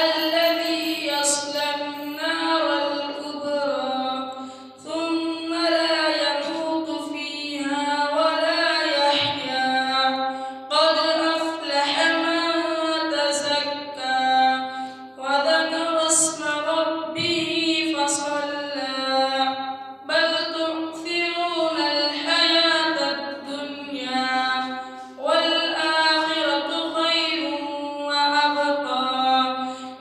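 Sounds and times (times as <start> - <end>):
boy chanting recitation: 0.0 - 30.0
short breaths: 4.3 - 4.8, 10.3 - 10.7, 14.7 - 15.2, 24.8 - 25.2, 29.6 - 30.0.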